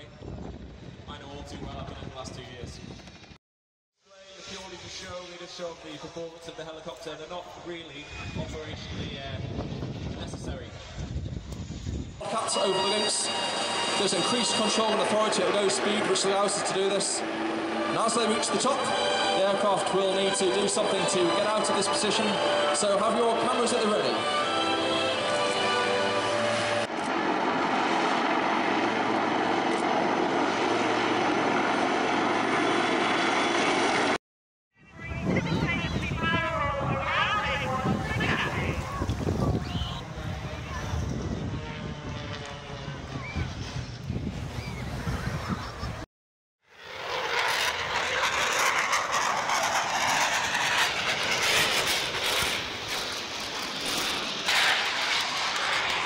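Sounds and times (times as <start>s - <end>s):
helicopter rotor and turbine noise: 0.0s - 3.4s, 4.0s - 34.2s, 34.8s - 56.0s
jet flying overhead: 4.1s - 34.2s, 34.8s - 56.0s
music: 17.9s - 26.9s.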